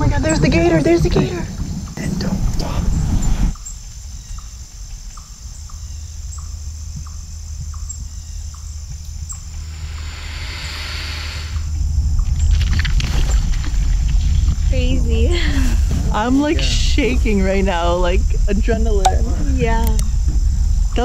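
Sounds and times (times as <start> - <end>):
wind and water on microphone: 0.0 - 3.6
faint high buzz: 6.4 - 14.9
soft hiss: 8.9 - 17.6.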